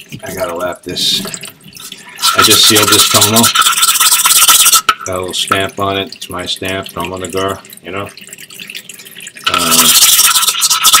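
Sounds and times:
stone scrubbing on lapping plate: 0:01.2 - 0:04.9, 0:08.6 - 0:11.0.

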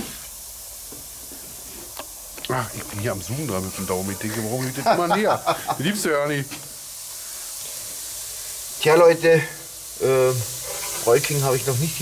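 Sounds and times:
chicken sizzling on grill: 0:00.0 - 0:12.0.

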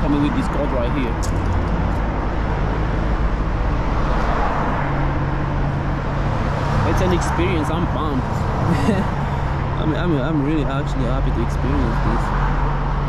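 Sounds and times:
constant low rumble: 0:00.0 - 0:12.3
car passing: 0:00.0 - 0:13.0
low engine hum: 0:00.0 - 0:13.0.

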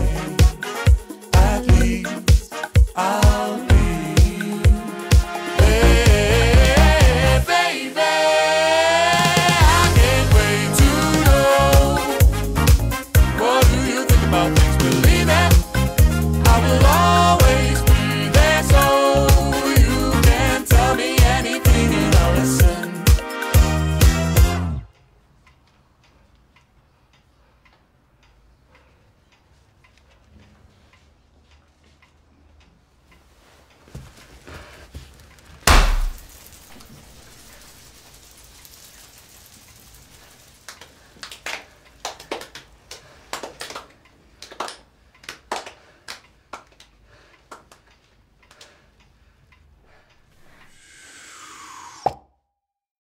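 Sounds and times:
clock ticking: 0:00.0 - 0:07.6, 0:09.1 - 0:34.2
cartoon pop: 0:35.6 - 0:36.3, 0:51.7 - 0:52.3
downward-sliding swoosh: 0:50.5 - 0:52.2.

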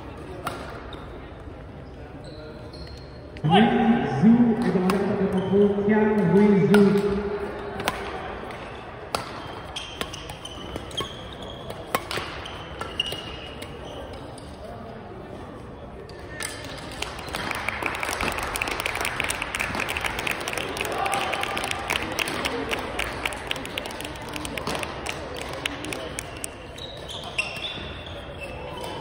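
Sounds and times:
crowd noise: 0:00.0 - 0:29.0
shoes squeaking on gym floor: 0:02.1 - 0:03.4, 0:09.4 - 0:14.8, 0:26.3 - 0:29.0
racket striking shuttlecock: 0:11.7 - 0:13.3
clapping: 0:16.4 - 0:26.5.

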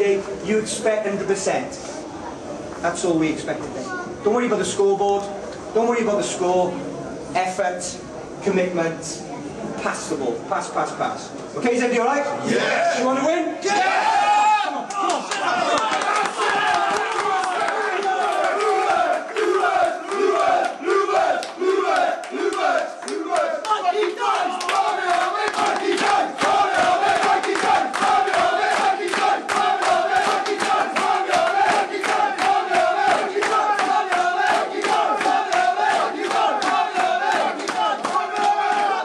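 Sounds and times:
men chanting and shouting: 0:12.3 - 0:39.0
rhythmic hand clapping: 0:14.9 - 0:39.0.

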